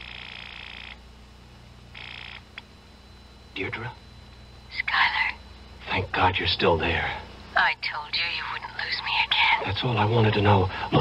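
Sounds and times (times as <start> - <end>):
telephone bell ringing: 2.0 - 2.4.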